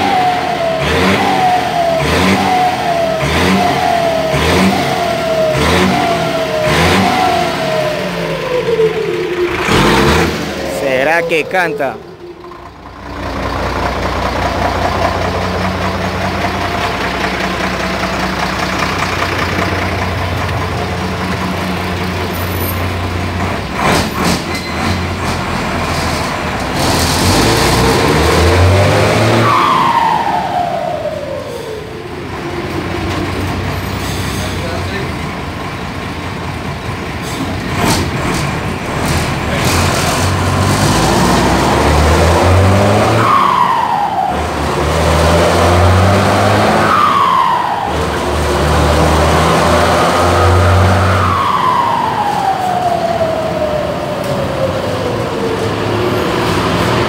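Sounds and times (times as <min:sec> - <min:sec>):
bus diesel engine pulling: 0:00.0 - 0:57.0.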